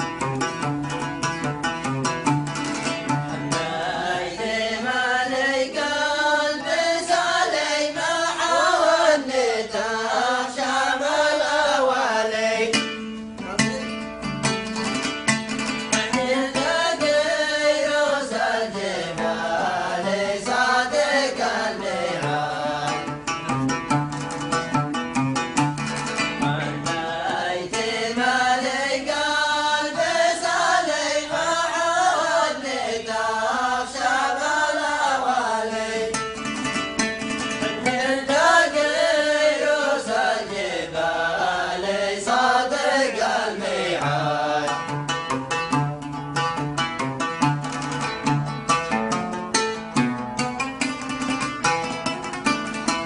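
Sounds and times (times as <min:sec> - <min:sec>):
oud playing: 0:00.0 - 0:53.0
men chanting song: 0:03.1 - 0:12.9, 0:16.0 - 0:23.2, 0:26.4 - 0:36.2, 0:37.7 - 0:45.0.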